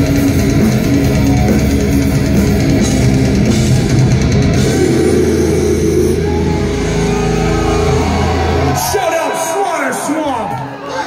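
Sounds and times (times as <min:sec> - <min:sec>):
distorted guitars holding chord: 0:00.0 - 0:08.8.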